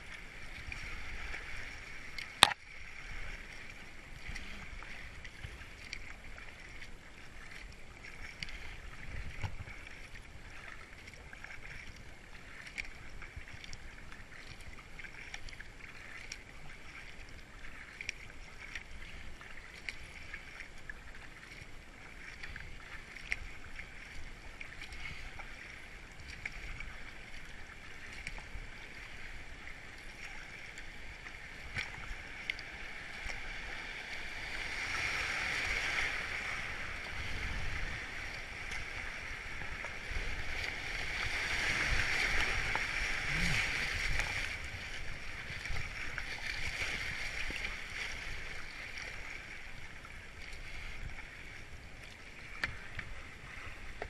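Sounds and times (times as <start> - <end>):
kayak paddles splashing: 0.0 - 54.0
river water rushing: 15.0 - 53.9.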